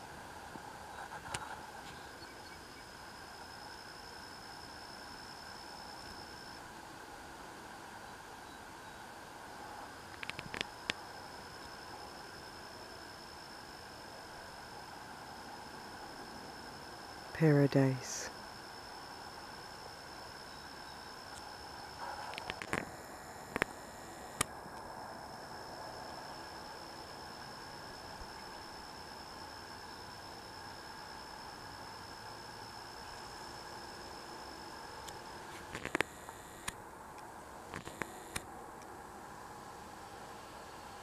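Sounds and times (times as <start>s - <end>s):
steady hiss: 0.0s - 41.0s.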